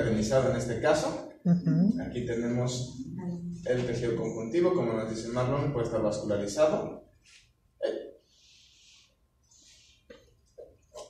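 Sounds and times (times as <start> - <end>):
person's throat sound: 7.8 - 8.3
faint breaths: 8.2 - 10.3.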